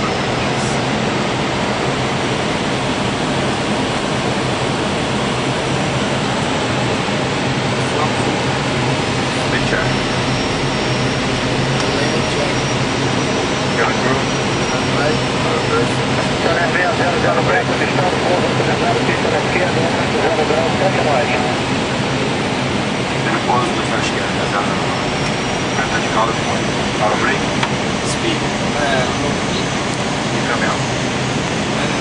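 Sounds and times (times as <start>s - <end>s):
low engine hum: 0.0s - 32.0s
rushing airflow: 0.0s - 32.0s
faint high whine: 7.5s - 32.0s
faint voices: 7.6s - 22.4s, 23.0s - 30.9s.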